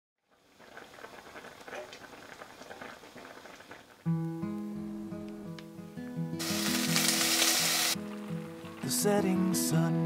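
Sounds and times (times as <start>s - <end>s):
food simmering in a pot: 0.2s - 4.2s.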